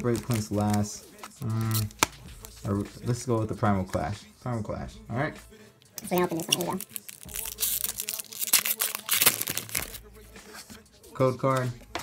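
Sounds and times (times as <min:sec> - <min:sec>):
foil wrapper tearing and crinkling: 0:00.0 - 0:02.6, 0:06.2 - 0:10.0.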